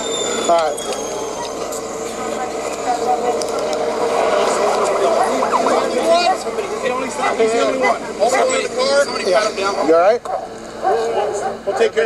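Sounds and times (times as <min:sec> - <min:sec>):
vehicle noise: 0:00.0 - 0:11.4
people talking indistinctly: 0:00.1 - 0:12.0.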